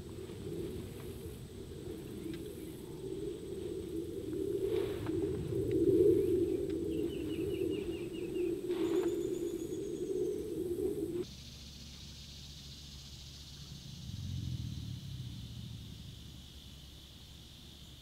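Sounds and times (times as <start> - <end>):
low wavering rumble: 0.0 - 18.0
bird trilling: 6.1 - 11.2.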